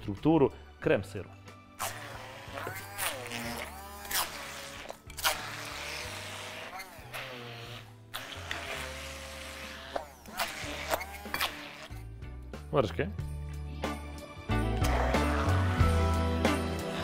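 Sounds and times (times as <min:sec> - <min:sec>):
background music with bass: 0:00.0 - 0:17.0
immersion blender motor whine: 0:01.8 - 0:12.0.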